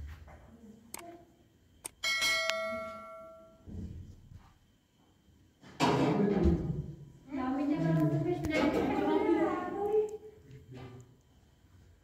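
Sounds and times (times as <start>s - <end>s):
bell-like chime ringing: 2.0s - 3.6s.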